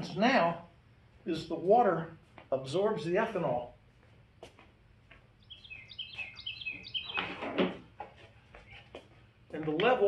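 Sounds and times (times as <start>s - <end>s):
small bird chirping: 5.4s - 7.3s.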